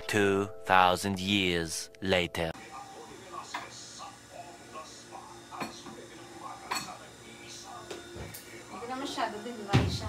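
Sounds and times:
faint indistinct voices: 2.6 - 9.9.

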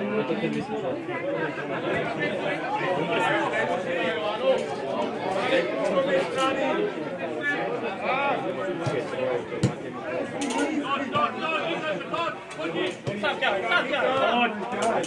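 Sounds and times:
spectators chatting: 0.0 - 15.0.

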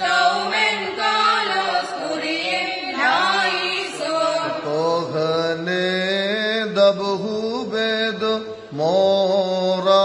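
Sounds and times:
man chanting a hymn: 4.3 - 10.0.

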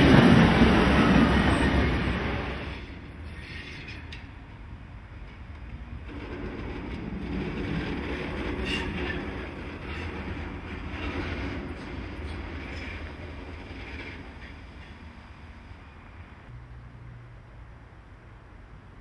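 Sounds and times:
train wheels clicking and squealing: 0.0 - 4.4, 5.2 - 16.0.

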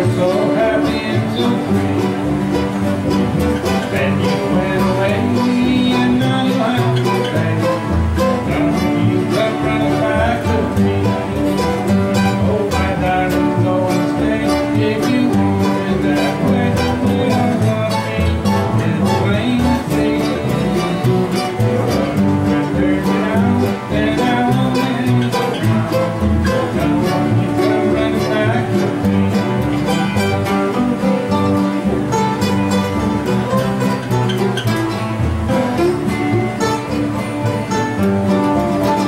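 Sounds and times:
acoustic guitars strumming country tune: 0.0 - 39.0.

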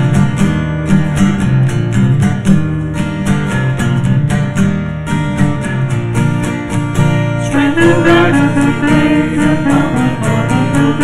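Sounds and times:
strummed guitar: 0.0 - 11.0
sustained bass notes: 7.2 - 11.0.

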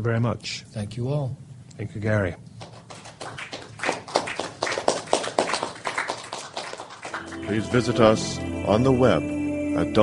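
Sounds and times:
audience clapping: 2.6 - 7.9.

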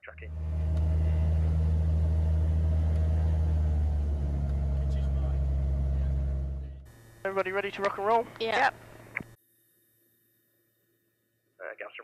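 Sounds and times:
propeller plane engine drone: 0.0 - 9.4.

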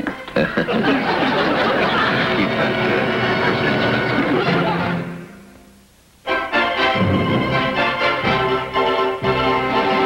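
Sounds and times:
audience laughter: 0.4 - 5.1
orchestral music: 6.3 - 10.0.

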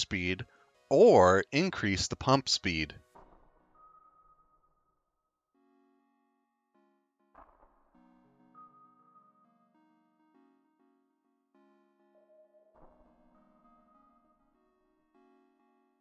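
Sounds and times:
soft sustained keyboard chords: 5.5 - 16.0.

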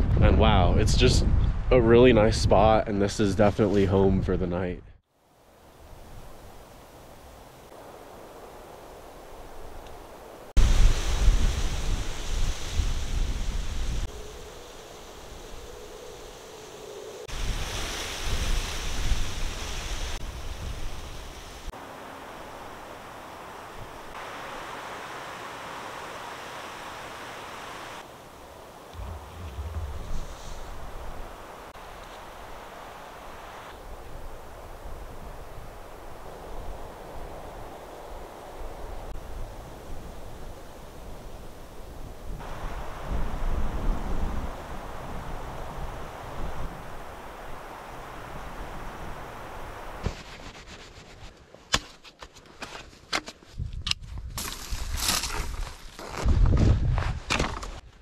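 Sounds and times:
wind buffeting microphone: 0.0 - 2.8, 28.9 - 50.0, 56.1 - 57.3.

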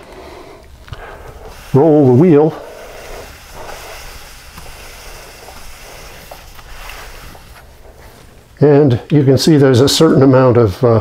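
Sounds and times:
paper towel swishing on brake disc: 0.9 - 8.5.

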